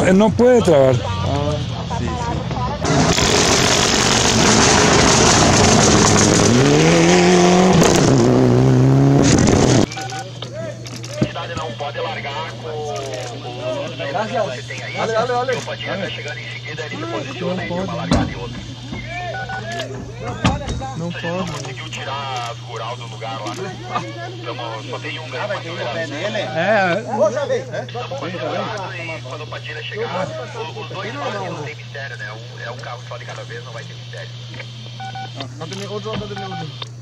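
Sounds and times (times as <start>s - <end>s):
people talking: 0.0s - 3.1s, 9.9s - 34.4s, 35.4s - 36.8s
steady low hum: 0.0s - 37.0s
rally car engine at speed: 2.8s - 9.9s
tyres on loose gravel: 2.9s - 7.2s.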